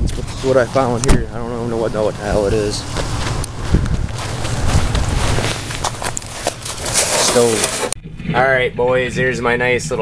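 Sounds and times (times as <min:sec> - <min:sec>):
steady rushing noise: 0:00.0 - 0:08.3
footsteps on snow: 0:02.2 - 0:07.9.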